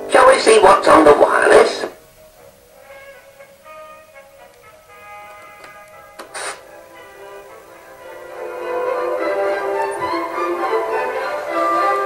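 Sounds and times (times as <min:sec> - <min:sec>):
music from small speaker: 0:01.4 - 0:12.0
burst of hiss: 0:06.2 - 0:06.8.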